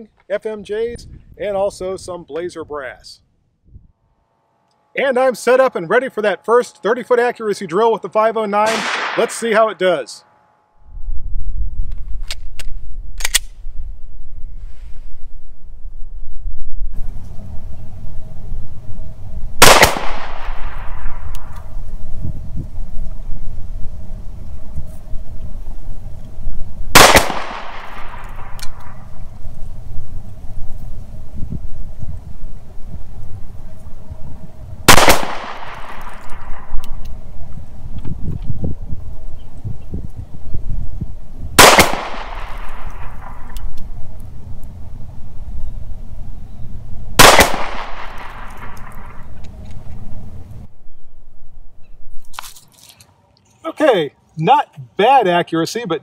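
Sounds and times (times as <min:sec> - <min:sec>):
pistol shots with echo: 0:08.6 - 0:09.6, 0:19.6 - 0:21.5, 0:26.9 - 0:29.0, 0:34.9 - 0:36.9, 0:41.6 - 0:43.6, 0:47.2 - 0:49.2.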